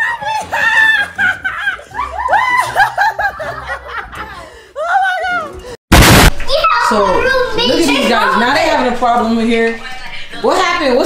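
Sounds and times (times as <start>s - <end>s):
woman laughing: 0.2s - 5.6s.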